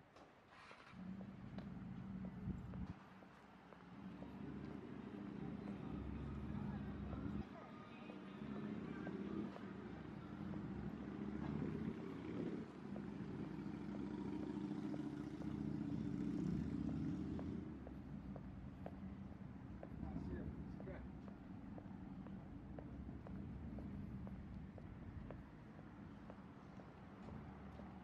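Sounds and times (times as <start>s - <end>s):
road traffic hum: 0.1s - 28.0s
footsteps on paving: 1.2s - 28.0s
people talking: 5.2s - 11.6s, 20.0s - 21.1s.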